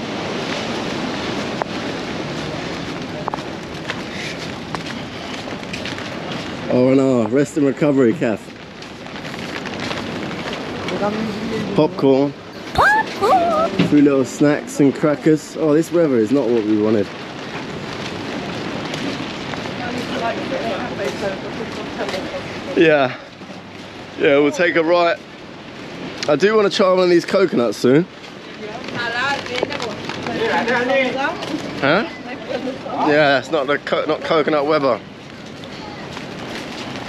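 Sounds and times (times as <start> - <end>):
rain hiss: 0.0 - 37.0
raindrop taps: 2.8 - 6.7, 28.1 - 31.7.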